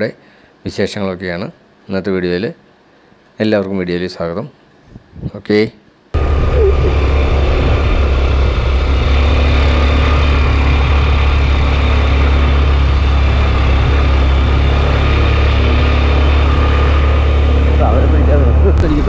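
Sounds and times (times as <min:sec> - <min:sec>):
vehicle engine and road rumble: 0:06.2 - 0:19.0.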